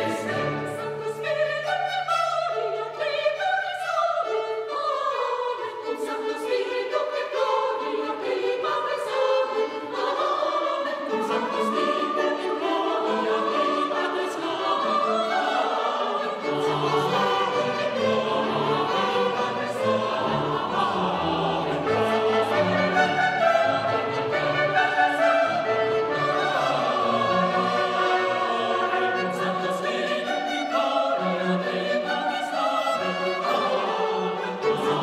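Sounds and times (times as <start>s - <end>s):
mixed choir singing: 0.0s - 35.0s
small baroque orchestra: 0.0s - 35.0s.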